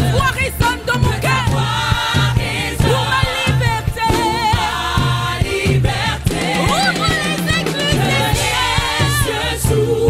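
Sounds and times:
band accompaniment with beat: 0:00.0 - 0:10.0
gospel choir singing: 0:00.0 - 0:10.0
lead singer voice: 0:06.4 - 0:09.7.

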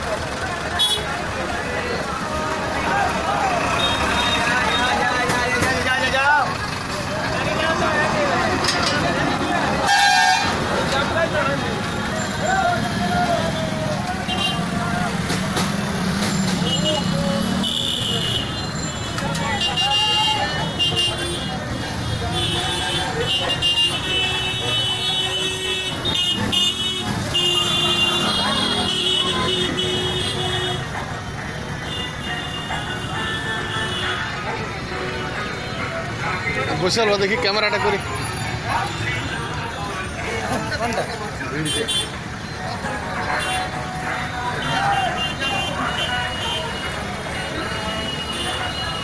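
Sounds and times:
bus and car engines idling: 0:00.0 - 0:49.0
people's voices: 0:00.0 - 0:49.0
vehicle horns honking: 0:03.6 - 0:05.2, 0:09.6 - 0:10.7, 0:13.5 - 0:14.8, 0:16.3 - 0:31.0, 0:31.7 - 0:35.9, 0:41.6 - 0:42.4, 0:44.5 - 0:49.0.

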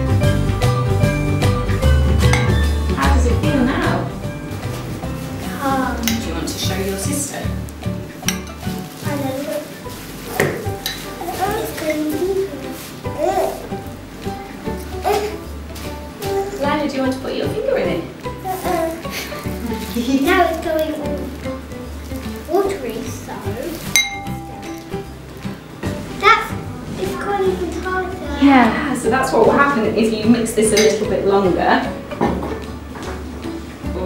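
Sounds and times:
background music: 0:00.0 - 0:34.0
thick mixture being stirred: 0:01.4 - 0:33.4
spoon clinking against glass bowl: 0:02.2 - 0:02.8, 0:08.2 - 0:08.7, 0:23.8 - 0:25.0, 0:30.7 - 0:31.1
spoon stirring thick mixture: 0:04.4 - 0:09.0.

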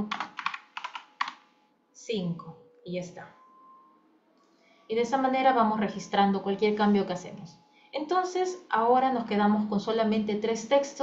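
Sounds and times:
typing on computer keyboard: 0:00.0 - 0:01.4.

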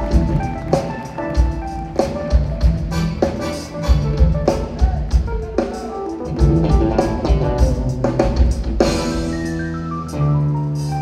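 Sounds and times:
drum kit: 0:00.0 - 0:11.0
keyboard chords: 0:00.0 - 0:11.0
electric bass: 0:06.3 - 0:11.0.

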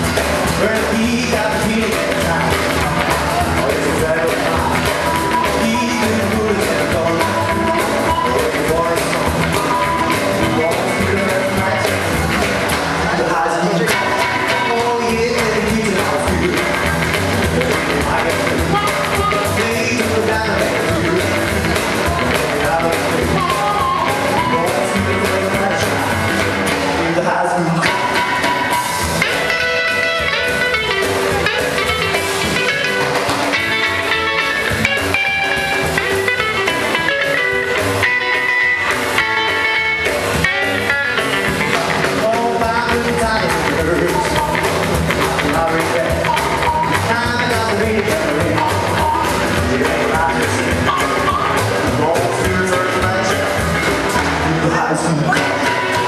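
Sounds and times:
harmonica: 0:00.0 - 0:12.4, 0:16.5 - 0:26.6, 0:27.8 - 0:42.2, 0:43.2 - 0:54.4, 0:55.3 - 0:56.0
rockabilly band playing: 0:00.0 - 0:56.0.

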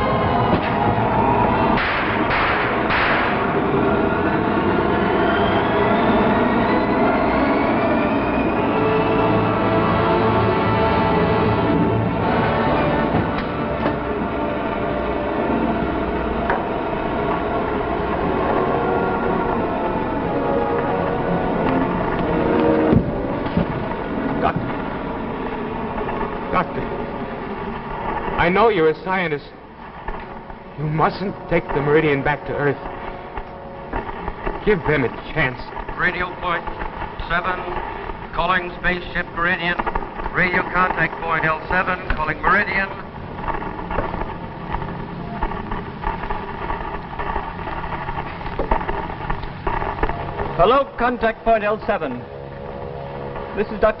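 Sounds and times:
sustained droning chord: 0:00.0 - 0:54.0.

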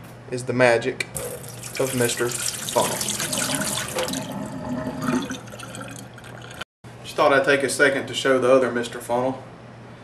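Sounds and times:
water splashing into metal sink: 0:01.2 - 0:06.6
water trickling and dripping: 0:01.2 - 0:06.6.

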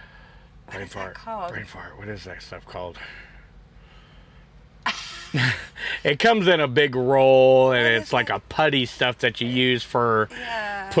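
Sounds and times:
faint low hum: 0:00.0 - 0:11.0
woman laughing: 0:04.8 - 0:05.8, 0:07.8 - 0:08.4.

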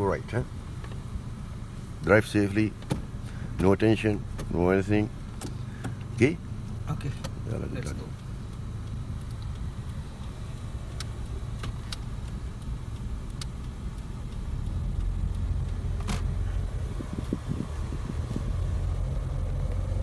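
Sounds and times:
car engine and road rumble: 0:00.0 - 0:20.0
sharp clicks in car cabin: 0:02.7 - 0:03.1, 0:04.1 - 0:04.6, 0:05.3 - 0:06.2, 0:07.0 - 0:07.5, 0:08.2 - 0:17.5.

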